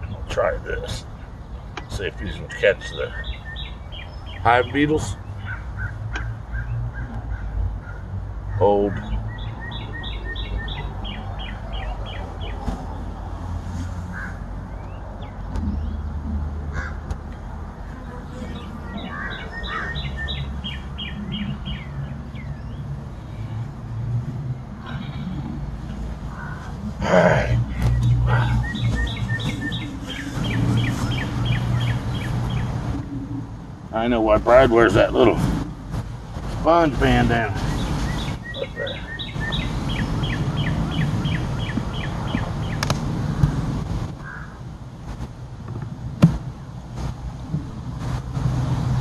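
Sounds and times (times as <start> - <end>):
steady low hum: 14.4 - 39.1
bird singing high notes: 27.6 - 32.8.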